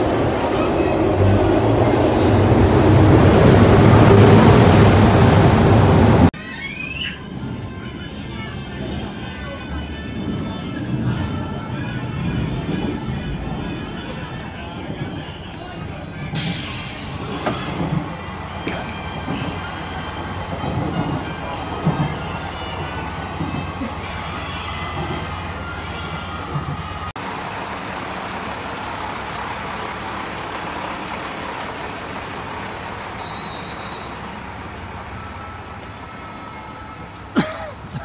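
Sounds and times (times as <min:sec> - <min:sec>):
train running noise: 0:00.0 - 0:38.0
loud high hiss: 0:16.4 - 0:17.5.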